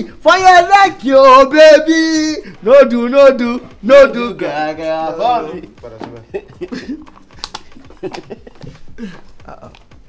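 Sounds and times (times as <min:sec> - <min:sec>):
people chuckling: 0:06.1 - 0:09.9.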